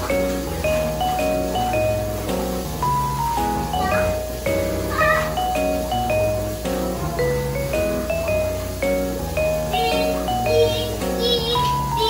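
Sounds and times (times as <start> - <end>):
upbeat music with mallet percussion: 0.0 - 12.0.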